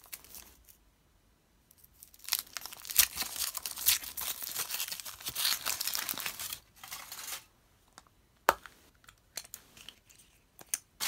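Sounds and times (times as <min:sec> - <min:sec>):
foil wrapper crinkling and tearing: 0:01.9 - 0:07.5.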